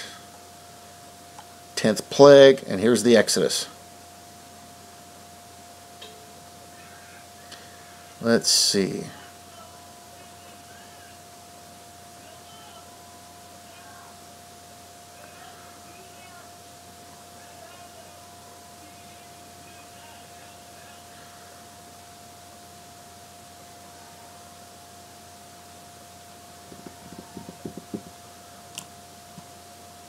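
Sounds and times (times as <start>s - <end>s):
faint constant tone: 0.0s - 30.0s
low steady hiss: 0.0s - 30.0s.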